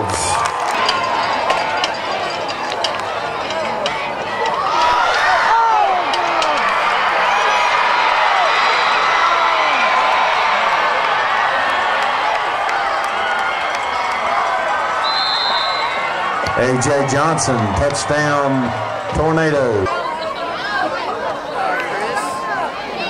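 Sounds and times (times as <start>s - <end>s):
crowd shouting and cheering: 0.0s - 23.0s.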